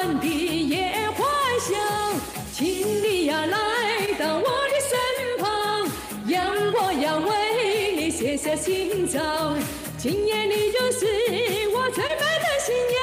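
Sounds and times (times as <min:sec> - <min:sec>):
backing track with steady beat: 0:00.0 - 0:13.0
woman singing pop song: 0:00.0 - 0:13.0.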